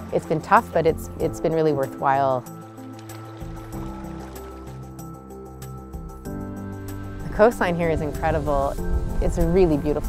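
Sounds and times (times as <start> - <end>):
soft sustained chords music: 0.0 - 10.0.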